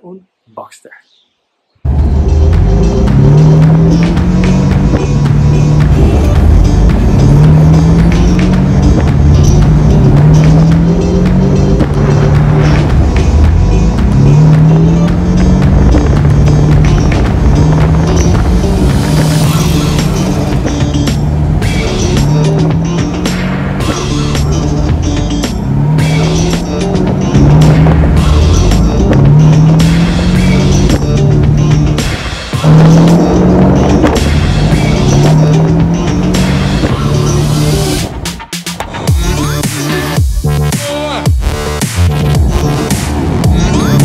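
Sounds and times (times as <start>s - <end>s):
music with steady beat and bass: 1.9s - 44.0s.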